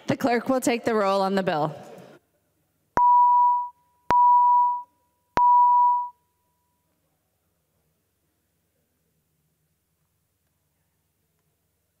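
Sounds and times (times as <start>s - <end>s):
electronic beeps: 3.0s - 6.2s.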